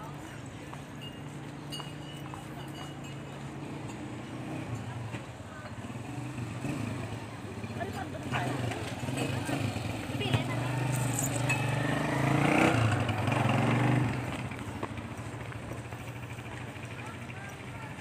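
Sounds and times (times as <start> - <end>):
small motorcycle engine running: 3.8 - 18.0.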